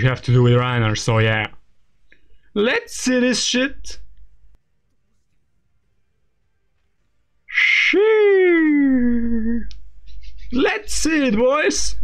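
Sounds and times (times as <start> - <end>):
long descending cry: 7.5 - 9.8.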